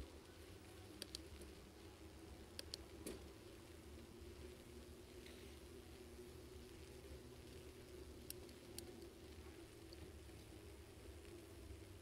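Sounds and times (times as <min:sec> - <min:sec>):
faint low rumble of bicycle: 0:00.0 - 0:12.0
sharp clicks: 0:02.5 - 0:03.2.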